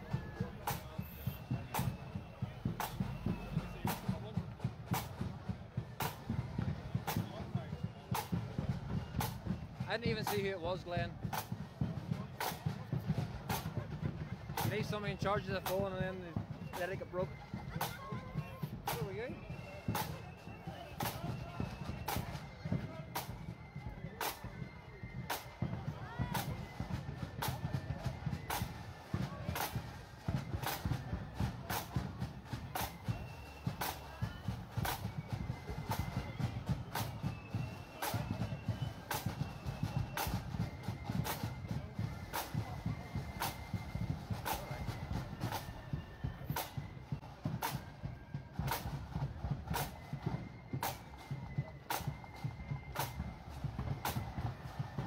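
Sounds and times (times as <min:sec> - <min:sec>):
drum strikes: 0:00.0 - 0:23.5, 0:25.2 - 0:27.6, 0:28.3 - 0:55.0
parade band music: 0:00.0 - 0:55.0
street noise rumble: 0:00.0 - 0:55.0.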